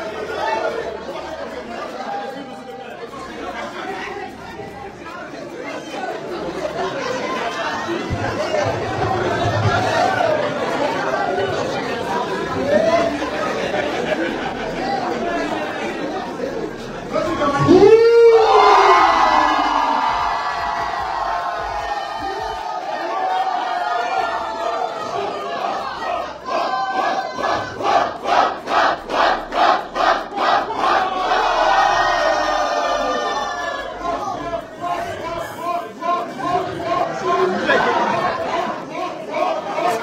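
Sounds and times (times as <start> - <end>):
crowd cheering: 0.0 - 40.0
men chanting and shouting: 12.5 - 40.0
loud shout rising and falling: 17.2 - 40.0.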